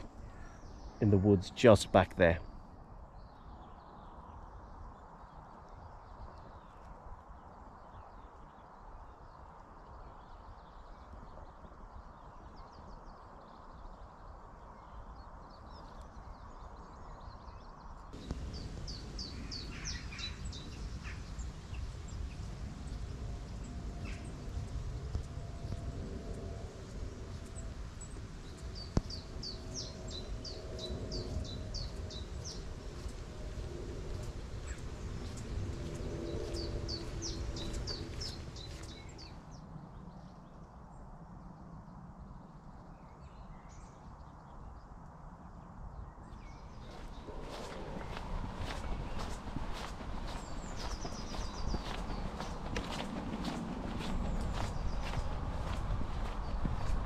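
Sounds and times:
songbird singing: 0.0s - 45.1s, 45.9s - 57.0s
low outdoor rumble: 18.2s - 39.2s, 46.7s - 57.0s.

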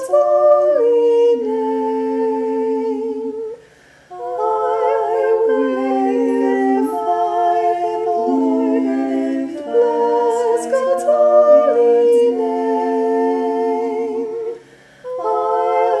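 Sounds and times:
unaccompanied voices singing a chant: 0.0s - 16.0s.

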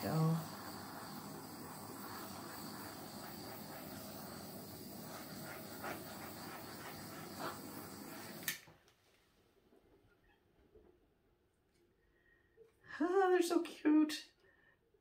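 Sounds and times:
torch click: 0.0s - 8.8s
torch flame hissing: 0.0s - 8.8s.

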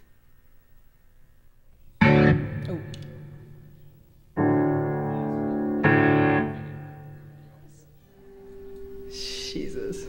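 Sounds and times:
guitar chord ringing: 2.0s - 3.6s, 4.4s - 7.5s.

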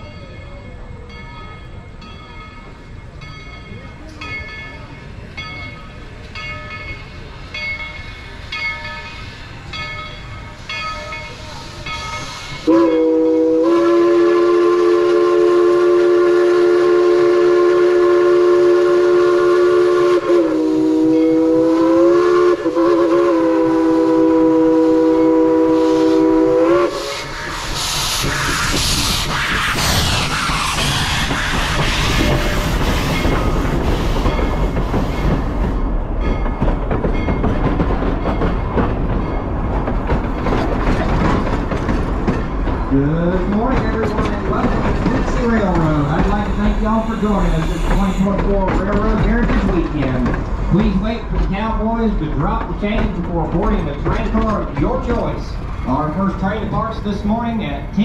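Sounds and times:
train wheels clicking: 2.0s - 58.0s
hiss of steam: 10.5s - 15.6s, 25.6s - 35.4s, 45.3s - 48.6s
steam locomotive whistle: 10.9s - 33.4s.

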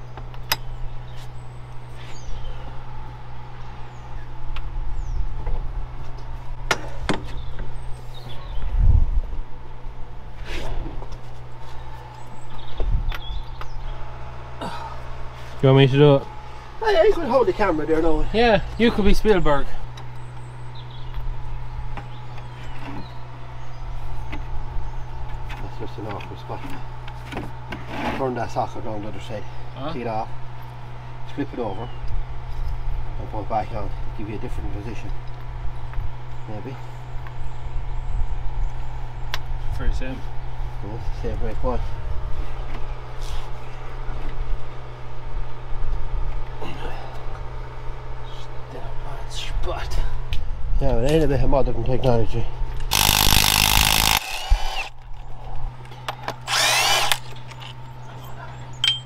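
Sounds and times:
engine droning: 9.3s - 50.7s, 51.3s - 59.0s.

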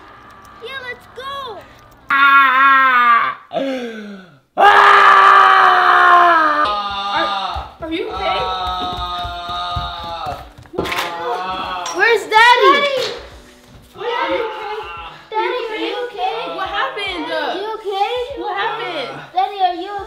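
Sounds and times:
man wailing and groaning: 4.6s - 7.7s
footsteps thumping: 6.1s - 18.6s.

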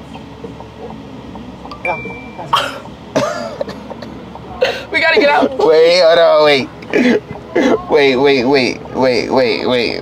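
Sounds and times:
person coughing: 2.5s - 3.9s.

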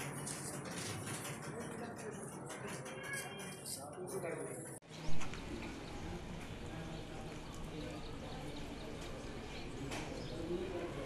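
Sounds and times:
people talking faintly: 1.3s - 11.0s.

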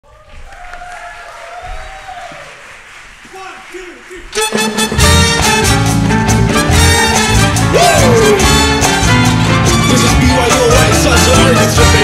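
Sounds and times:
audience applause: 0.1s - 4.8s.

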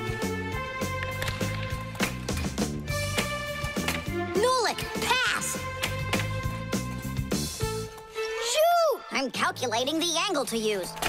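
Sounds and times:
upbeat music with steady beat: 0.0s - 8.0s.

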